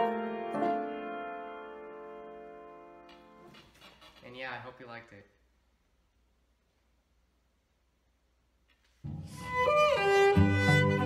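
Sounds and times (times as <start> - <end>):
piano chord: 0.0 - 3.4
young man speaking: 4.2 - 5.4.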